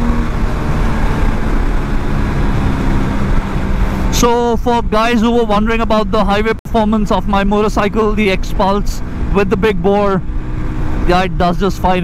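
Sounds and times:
wind rush on microphone: 0.0s - 5.5s.

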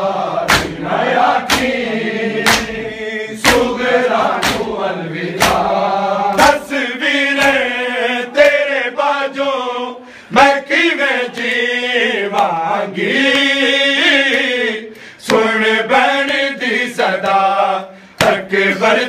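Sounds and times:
hands striking chests: 1.4s - 1.8s, 2.4s - 2.8s, 4.4s - 4.8s.

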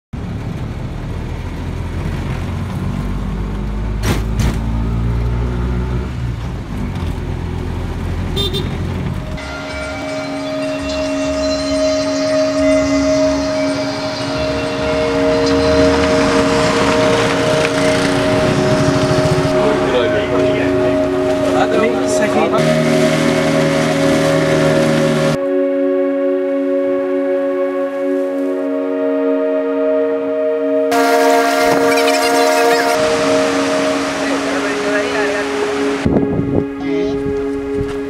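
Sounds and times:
auto-rickshaw engine running: 0.2s - 9.4s, 15.6s - 25.4s
horn-like sound: 8.4s - 38.0s
long held tones: 9.3s - 38.0s.

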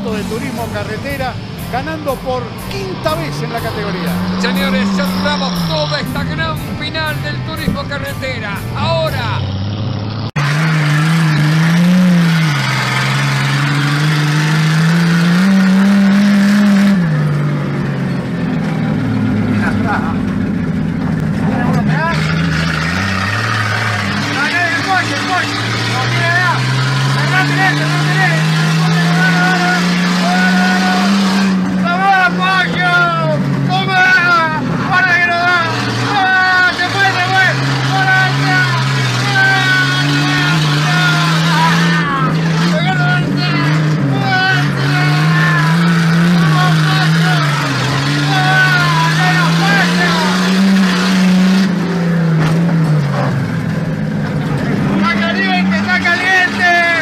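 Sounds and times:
car engine racing: 0.0s - 57.0s
voices shouting: 1.3s - 9.5s, 21.7s - 51.0s, 54.6s - 57.0s.

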